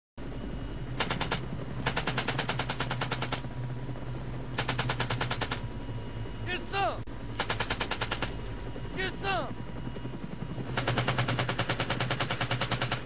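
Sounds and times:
helicopter engine and rotor drone: 0.2 - 13.0
machine gun bursts: 1.0 - 3.4, 4.6 - 5.6, 7.4 - 8.3, 10.7 - 13.0.

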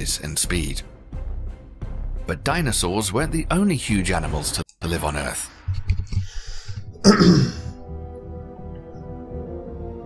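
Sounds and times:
soft background music: 0.0 - 10.0
man clearing throat: 7.0 - 7.7.

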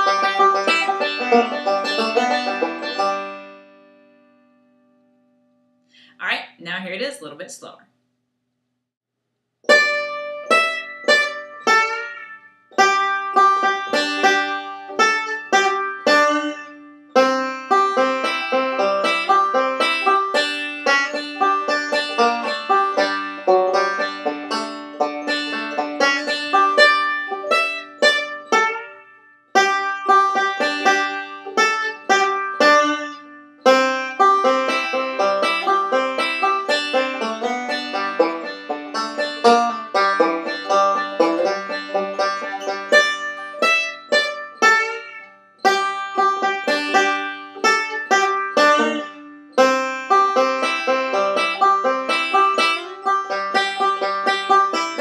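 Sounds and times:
banjo picking: 0.0 - 4.3, 9.6 - 55.0.

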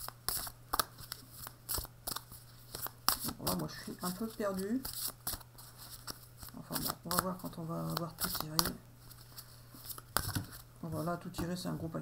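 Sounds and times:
cards being shuffled: 0.0 - 10.7.

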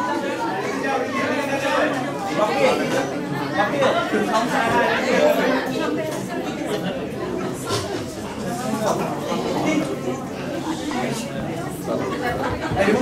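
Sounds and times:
overlapping conversational chatter: 0.0 - 13.0.

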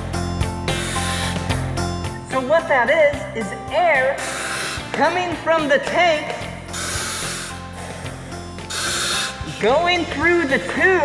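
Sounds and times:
breathing apparatus air hissing: 0.7 - 1.7, 4.1 - 5.0, 6.6 - 9.6.

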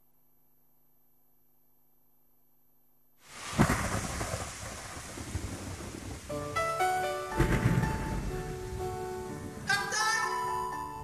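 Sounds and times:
steady rain: 3.2 - 9.7
rolling thunder rumble: 3.4 - 6.5, 7.3 - 9.7.

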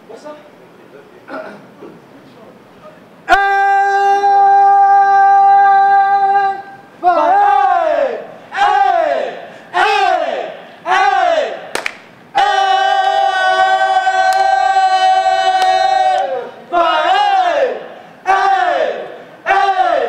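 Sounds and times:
men yelling calls: 3.2 - 11.7, 12.3 - 20.0.

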